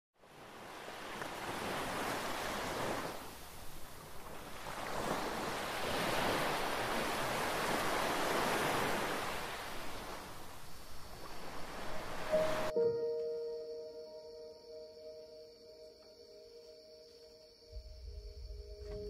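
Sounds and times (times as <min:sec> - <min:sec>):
waves rushing: 0:00.2 - 0:12.7.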